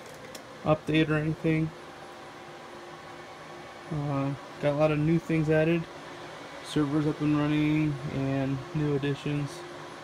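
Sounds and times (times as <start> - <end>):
cooling fans whirring: 0.0 - 10.0
faint steady hum: 0.0 - 10.0.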